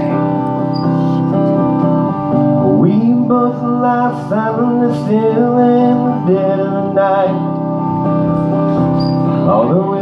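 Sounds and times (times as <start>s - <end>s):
acoustic guitar playing: 0.0s - 10.0s
man singing: 2.6s - 7.6s, 9.4s - 10.0s.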